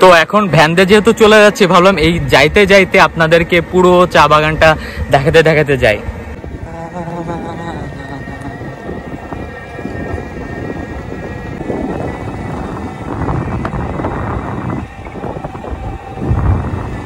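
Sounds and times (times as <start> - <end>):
wind buffeting microphone: 0.4 - 17.0.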